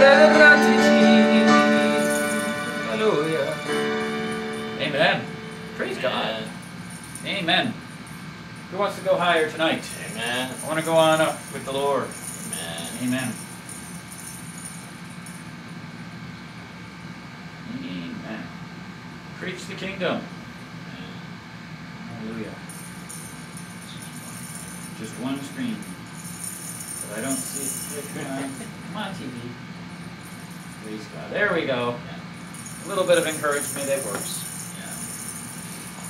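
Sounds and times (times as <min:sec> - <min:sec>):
tambourine jingles: 0:00.0 - 0:17.5, 0:22.3 - 0:36.0
men talking indistinctly: 0:04.8 - 0:06.6, 0:08.7 - 0:13.4, 0:27.0 - 0:29.6, 0:30.8 - 0:35.1.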